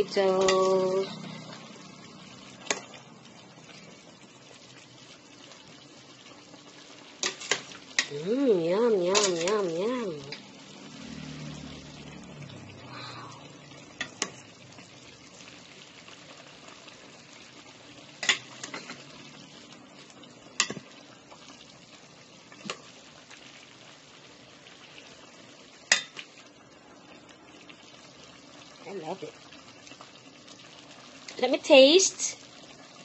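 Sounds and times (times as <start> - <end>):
spoon stirring food in pan: 2.6 - 3.0, 7.1 - 8.2, 9.0 - 10.5, 13.8 - 15.4, 18.1 - 19.2, 20.0 - 21.5, 25.8 - 26.4.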